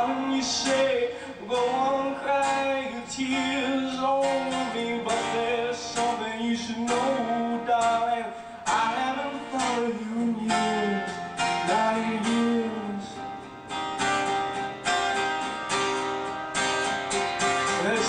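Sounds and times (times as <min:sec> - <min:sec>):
man singing: 0:00.0 - 0:13.5, 0:17.5 - 0:18.0
acoustic guitar strumming: 0:00.0 - 0:18.0.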